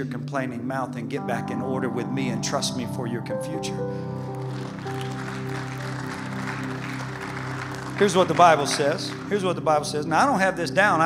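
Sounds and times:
keyboard sustained chords: 0:00.0 - 0:11.0
congregation applause: 0:04.3 - 0:10.0.

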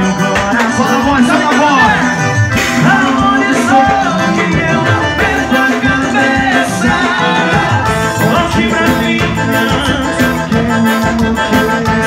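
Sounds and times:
accordion sustained notes: 0:00.0 - 0:12.0
live band steady beat: 0:00.0 - 0:12.0.

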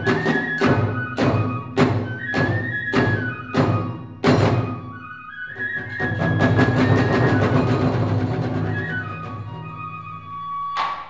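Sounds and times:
rapid drumming: 0:05.8 - 0:09.7.

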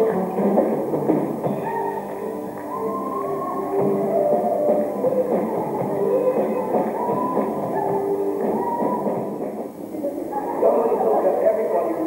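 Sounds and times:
live rock band playing: 0:00.0 - 0:09.6
drum kit: 0:00.0 - 0:10.0.

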